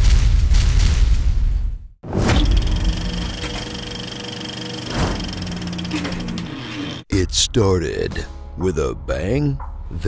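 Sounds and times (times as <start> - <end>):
fast mechanical rattle: 2.3 - 7.0.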